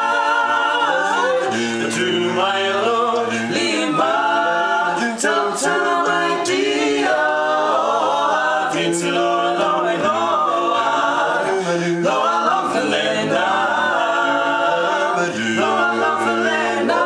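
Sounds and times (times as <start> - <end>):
quartet singing a cappella: 0.0 - 17.0.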